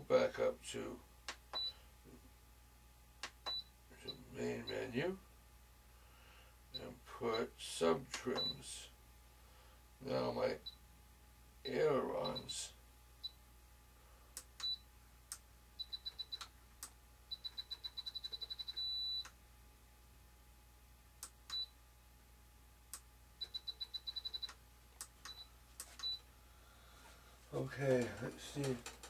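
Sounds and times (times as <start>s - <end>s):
remote transmitter beeping: 17.3s - 19.3s, 23.4s - 24.6s.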